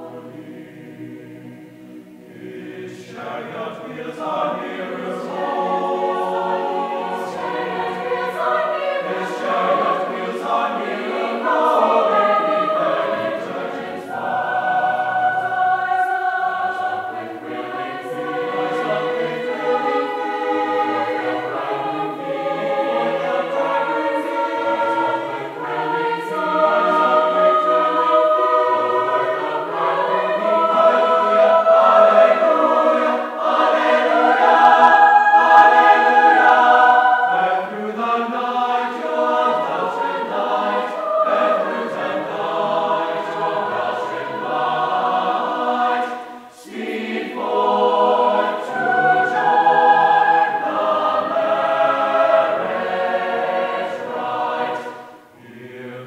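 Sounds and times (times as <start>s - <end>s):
mixed choir singing in harmony: 0.0s - 56.0s.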